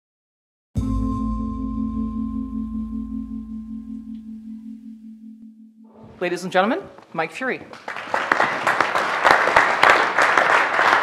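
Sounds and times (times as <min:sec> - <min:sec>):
singing bowl chime ringing: 0:00.8 - 0:06.0
low hum: 0:00.8 - 0:06.2.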